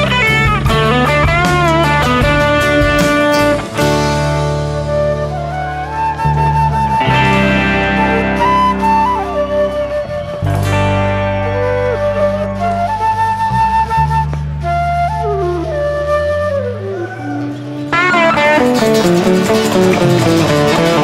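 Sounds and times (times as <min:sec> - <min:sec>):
live band with strummed guitars: 0:00.0 - 0:15.6, 0:16.6 - 0:21.0
flute melody: 0:00.0 - 0:21.0.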